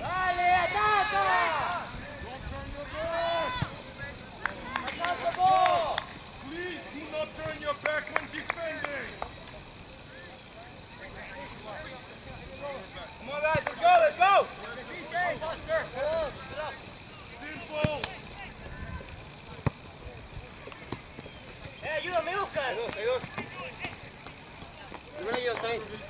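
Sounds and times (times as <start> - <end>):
distant players shouting: 0.0 - 10.1, 10.7 - 26.0.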